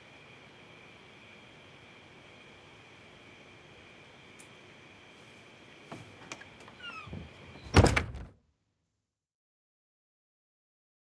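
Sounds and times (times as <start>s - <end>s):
door clicks: 6.3s - 8.3s
door hinges squeaking: 6.6s - 8.3s
door shutting with a thud: 6.8s - 8.4s.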